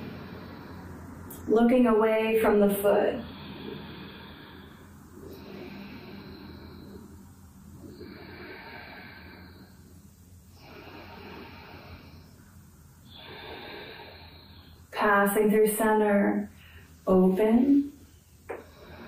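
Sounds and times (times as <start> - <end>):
woman breathing through the nose: 0.0 - 1.5, 3.0 - 15.0, 16.5 - 17.0, 18.0 - 19.0.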